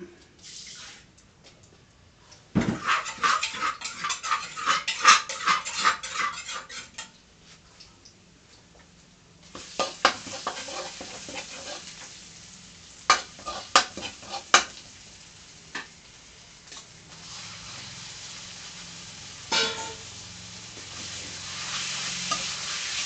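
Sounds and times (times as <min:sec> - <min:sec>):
paste sizzling in hot oil: 0:00.4 - 0:01.1, 0:02.8 - 0:07.1, 0:09.4 - 0:23.0
metal spatula scraping a wok: 0:02.8 - 0:07.1, 0:09.6 - 0:12.2, 0:13.1 - 0:14.8, 0:19.5 - 0:20.2, 0:21.0 - 0:23.0.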